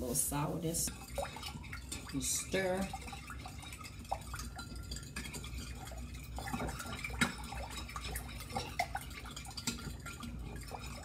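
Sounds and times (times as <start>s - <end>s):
liquid swishing: 0.0s - 11.0s.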